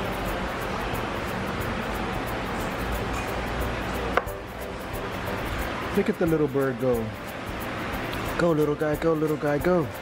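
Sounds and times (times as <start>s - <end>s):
faint background music: 0.0s - 10.0s
low restaurant rumble: 0.0s - 10.0s.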